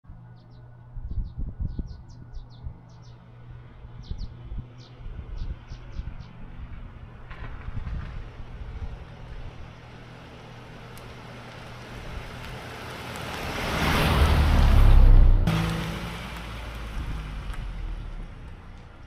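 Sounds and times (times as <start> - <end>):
birds chirping: 0.2 - 6.4
car engine and tyre noise: 2.7 - 19.0.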